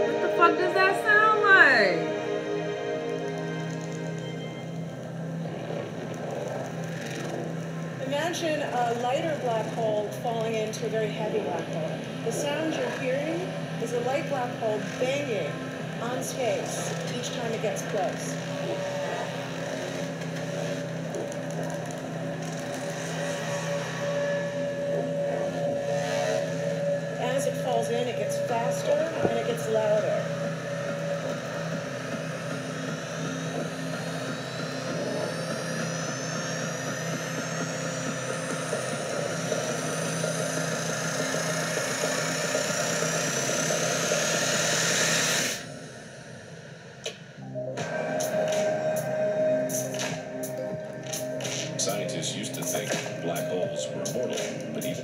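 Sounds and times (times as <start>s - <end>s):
music: 0.0s - 55.0s
steady low drone: 0.0s - 55.0s.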